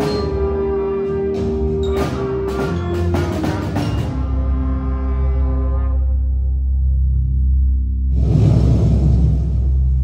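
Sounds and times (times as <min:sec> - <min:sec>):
brass band holding chord: 0:00.0 - 0:06.8.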